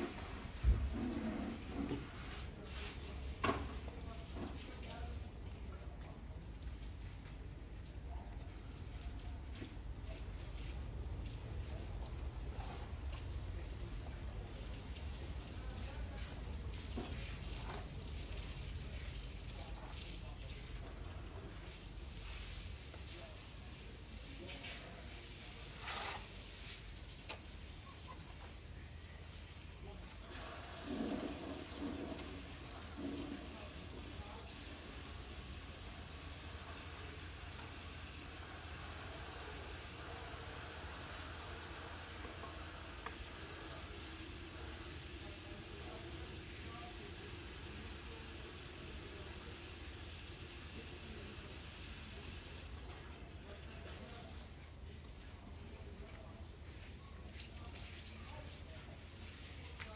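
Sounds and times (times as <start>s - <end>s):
rush like running water: 0.0s - 5.7s, 8.7s - 59.9s.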